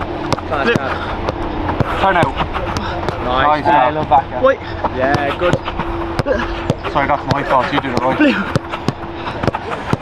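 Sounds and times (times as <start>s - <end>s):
football being struck: 0.2s - 3.3s, 5.1s - 10.0s.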